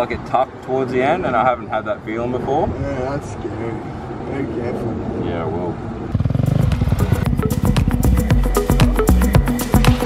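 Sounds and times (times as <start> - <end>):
dirt bike engine running: 6.2 - 9.0
music with steady beat: 6.6 - 10.0.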